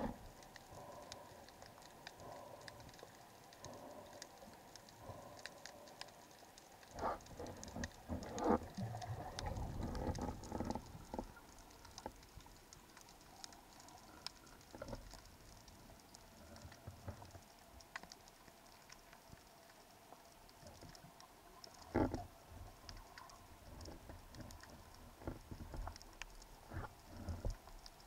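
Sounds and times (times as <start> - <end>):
diver moving through water: 0.0 - 12.3.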